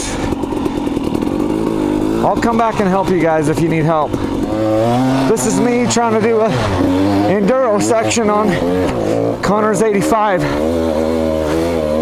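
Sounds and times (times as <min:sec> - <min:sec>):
dirt bike engine running: 0:00.0 - 0:12.0.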